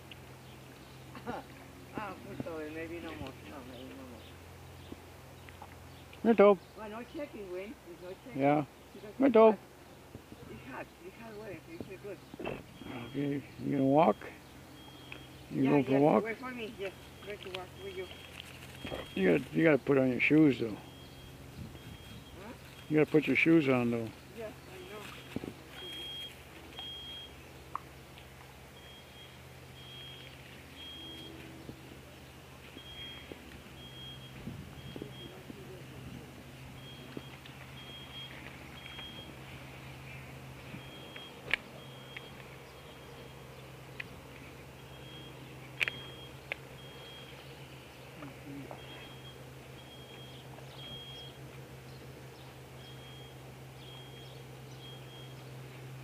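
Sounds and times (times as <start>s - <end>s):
steady low hum: 0.0s - 56.0s
faint high chirps: 12.8s - 19.5s, 20.5s - 23.4s, 28.7s - 31.8s, 32.6s - 35.8s, 36.8s - 55.8s
high-pitched electronic beeps: 20.8s - 22.5s, 36.8s - 39.4s.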